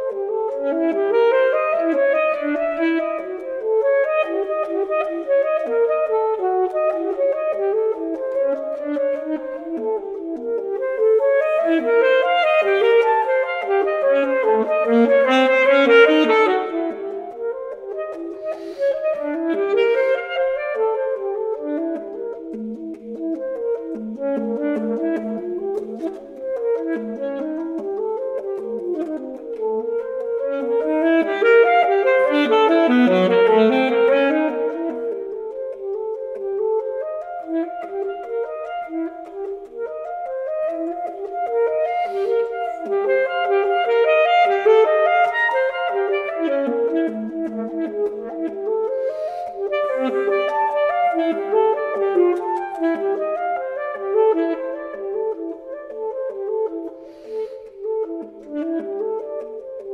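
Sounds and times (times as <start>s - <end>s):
solo saxophone playing fast notes: 0.0s - 59.9s.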